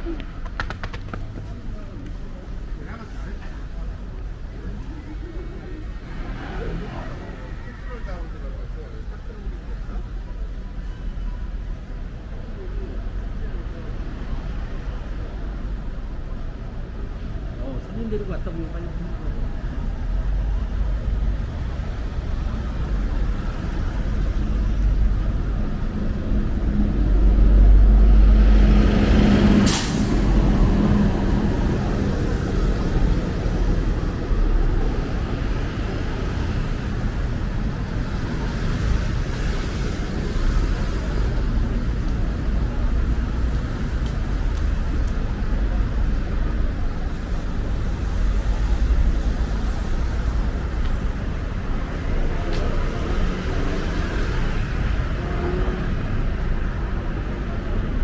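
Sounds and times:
street traffic: 0:00.0 - 0:58.0
heavy vehicle passing: 0:23.9 - 0:44.0
air-brake hiss: 0:29.7 - 0:30.2.

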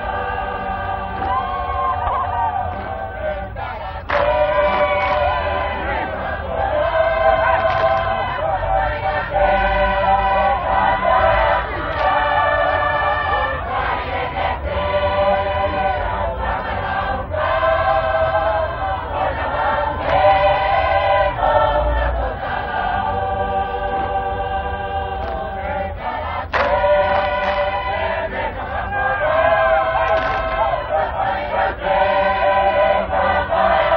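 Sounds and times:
group of voices singing: 0:00.0 - 0:33.9.

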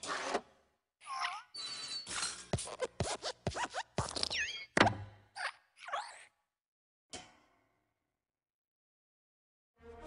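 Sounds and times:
springy cartoon squeaks: 0:01.0 - 0:06.3.

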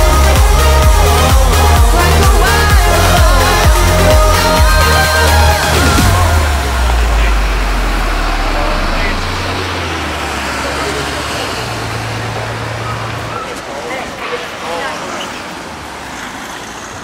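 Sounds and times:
low held bass note: 0:00.0 - 0:12.3
indistinct voices: 0:00.0 - 0:16.2
traffic noise: 0:00.0 - 0:17.0.

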